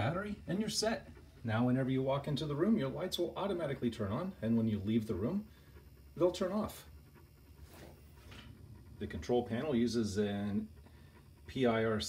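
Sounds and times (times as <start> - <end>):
faint breaths: 3.7 - 12.0.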